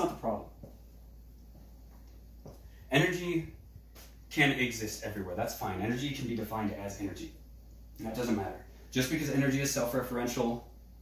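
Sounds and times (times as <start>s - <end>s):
man speaking: 0.0s - 0.6s, 2.9s - 3.6s, 4.3s - 7.4s, 8.0s - 10.7s
steady low hum: 0.0s - 11.0s.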